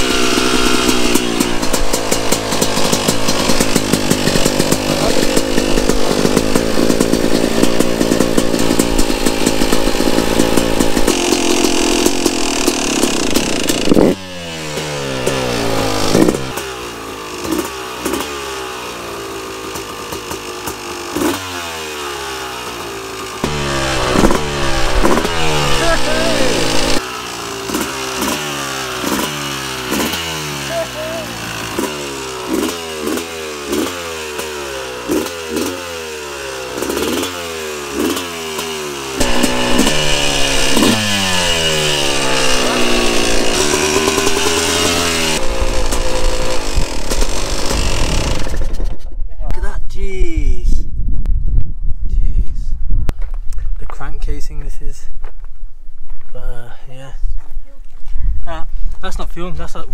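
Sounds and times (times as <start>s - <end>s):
dirt bike engine revving: 0.0s - 49.0s.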